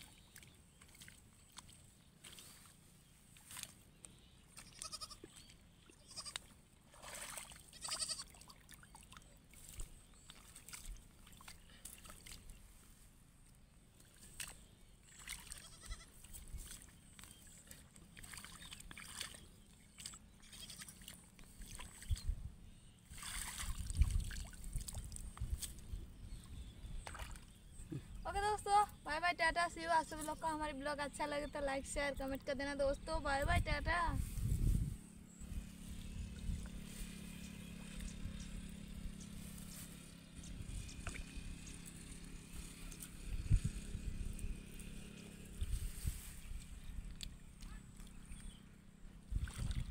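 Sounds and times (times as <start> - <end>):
splashing and rustling of weeds: 0.0 - 22.4, 23.0 - 26.0, 27.0 - 27.5, 34.2 - 48.2, 49.3 - 49.9
steady low hum: 15.8 - 49.9
wind rumbling on microphone: 23.6 - 27.1, 32.9 - 39.3, 42.6 - 47.2, 49.2 - 49.9.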